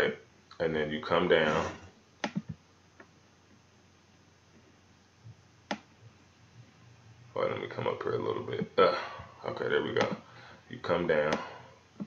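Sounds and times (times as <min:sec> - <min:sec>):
low room hiss: 0:00.0 - 0:12.0
computer mouse clicks: 0:02.2 - 0:02.6, 0:05.7 - 0:05.9.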